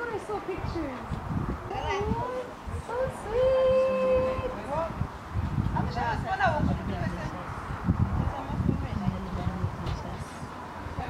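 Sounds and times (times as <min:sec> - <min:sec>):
outdoor party noise: 0:00.0 - 0:11.0.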